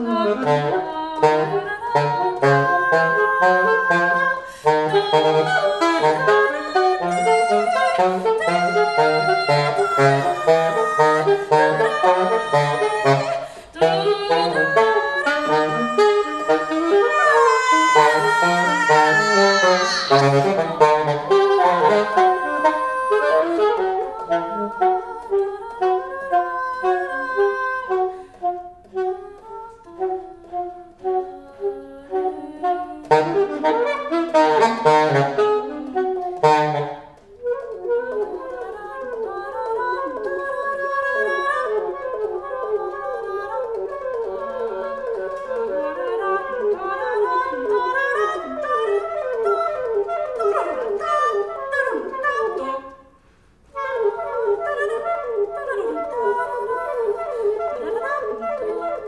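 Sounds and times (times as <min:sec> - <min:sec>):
saxophone improvising: 0:00.0 - 0:59.0.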